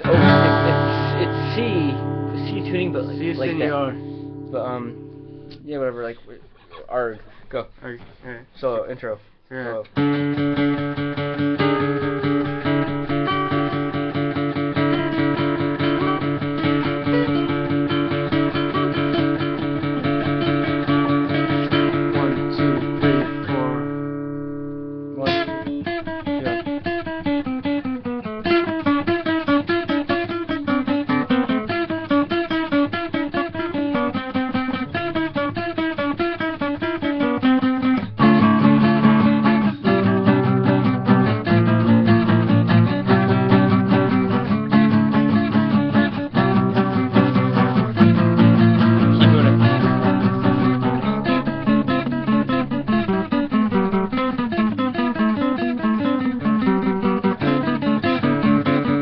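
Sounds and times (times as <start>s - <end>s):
acoustic guitar duet fast picking: 0.0s - 6.7s, 9.8s - 59.0s.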